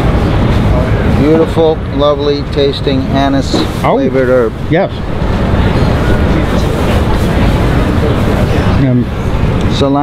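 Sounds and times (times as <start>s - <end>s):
city traffic rumble: 0.0s - 10.0s
indistinct background chatter: 0.0s - 10.0s.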